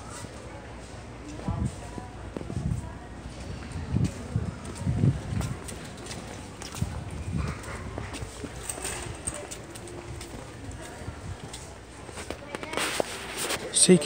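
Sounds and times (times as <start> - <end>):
faint voices: 0.0 - 14.0.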